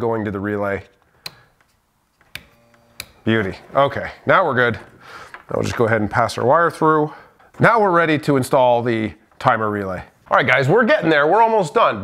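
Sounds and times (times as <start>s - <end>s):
rocker switch clicks: 2.3s - 3.2s.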